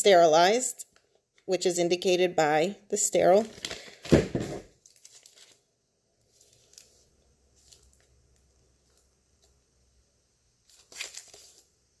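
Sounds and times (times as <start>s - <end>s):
plastic and paper pouches rustling: 3.3s - 8.1s, 10.6s - 11.7s.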